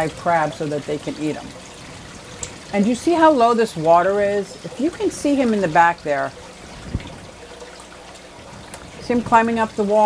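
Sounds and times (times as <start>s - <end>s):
aquarium water trickling: 0.0s - 10.0s.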